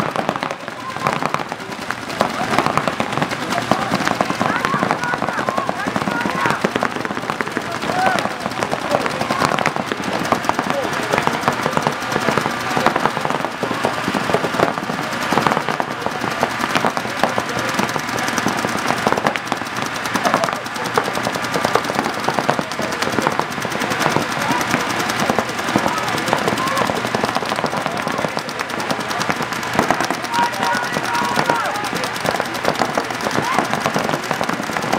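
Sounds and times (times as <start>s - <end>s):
paintball markers firing rapidly: 0.0s - 34.9s.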